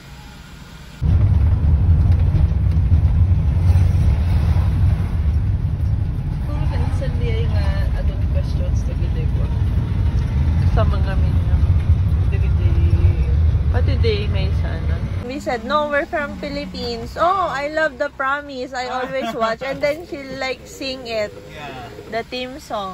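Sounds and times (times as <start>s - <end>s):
car interior engine and road rumble: 1.0s - 22.9s.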